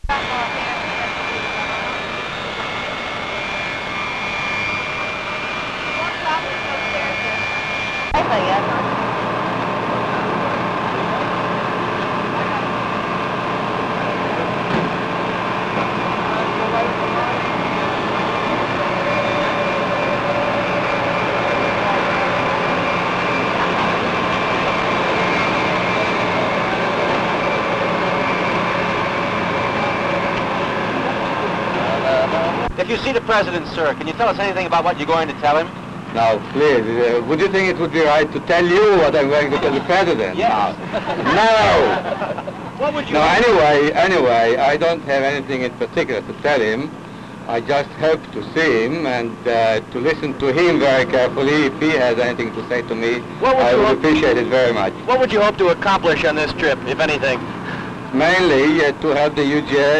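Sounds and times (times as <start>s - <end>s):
indistinct voices: 0.0s - 59.9s
jet engines whining: 0.0s - 59.9s.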